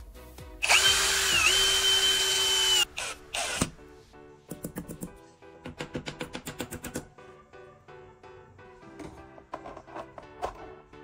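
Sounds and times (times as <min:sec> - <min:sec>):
drill motor whine: 0:00.6 - 0:03.6.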